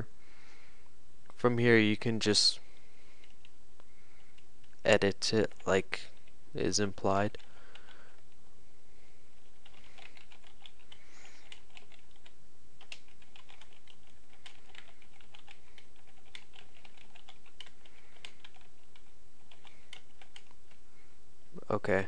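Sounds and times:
background hiss: 0.0s - 22.0s
man speaking: 1.4s - 2.6s, 4.8s - 7.4s, 21.6s - 22.0s.

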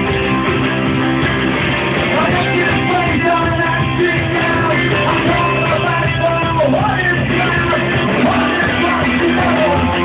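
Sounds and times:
bass guitar: 0.0s - 10.0s
electric guitar: 0.0s - 10.0s
rock band playing live: 0.0s - 10.0s.

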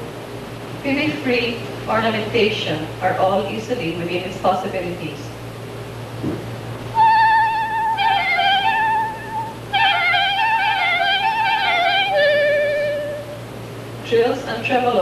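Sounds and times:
clarinet playing: 6.9s - 13.5s.

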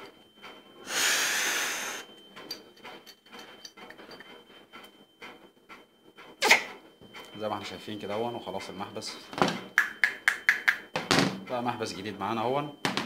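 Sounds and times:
valve clicking and ticking: 9.8s - 10.9s.

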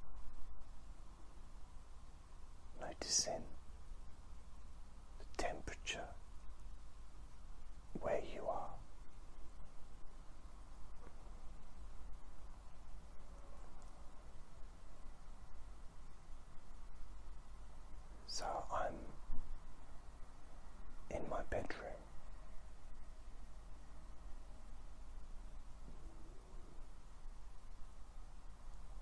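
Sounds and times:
low steady hum: 0.0s - 29.0s
person whispering: 2.8s - 3.6s, 5.2s - 6.2s, 8.0s - 8.8s, 18.3s - 19.3s, 21.1s - 22.1s.

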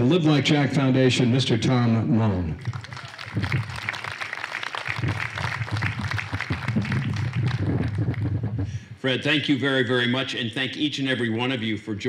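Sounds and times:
audience applauding: 2.6s - 8.6s.

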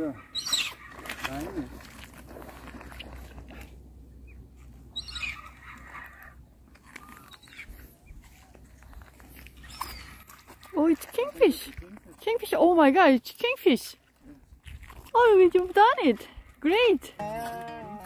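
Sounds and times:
faint bird calls: 0.1s - 1.1s, 4.2s - 8.6s.

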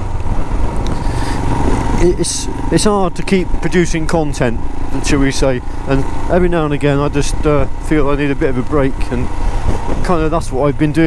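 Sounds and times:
motorcycle engine rumble: 0.0s - 11.0s
road and wind noise: 0.0s - 11.0s.

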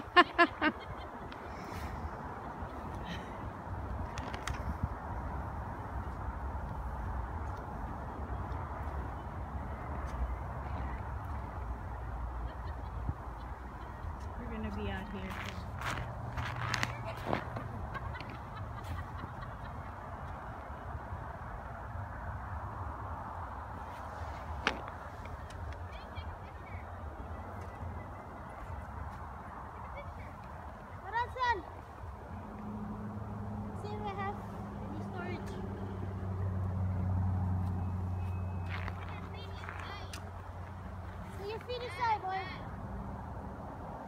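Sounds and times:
road traffic rumble: 0.0s - 44.0s
vehicle passing: 0.0s - 44.0s.

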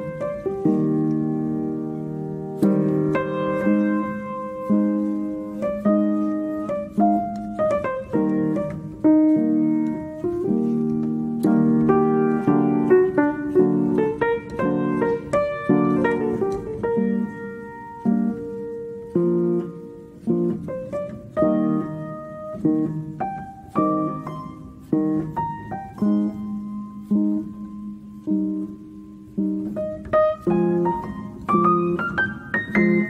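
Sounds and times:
piano music: 0.0s - 33.0s.

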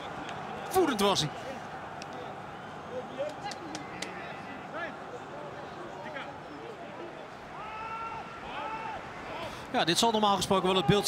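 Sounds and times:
people shouting in stadium: 7.5s - 9.5s.

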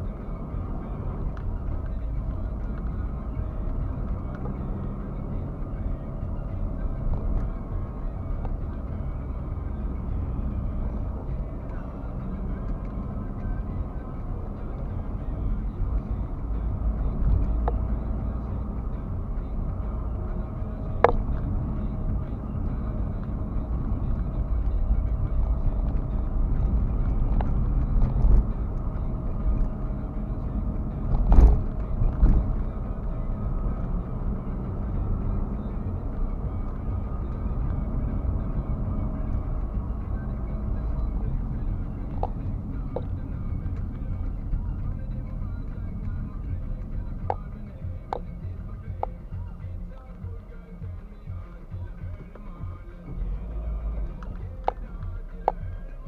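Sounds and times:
car engine and tyres rumbling: 0.0s - 56.0s.

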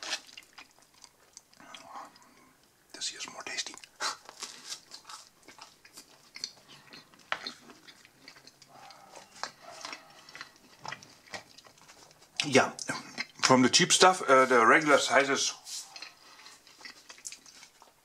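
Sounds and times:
chewing crusty bread: 0.0s - 2.8s, 3.5s - 13.9s, 14.7s - 18.0s.

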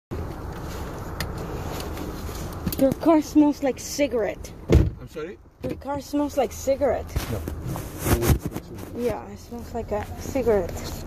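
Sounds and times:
car cabin low rumble: 0.1s - 11.0s.

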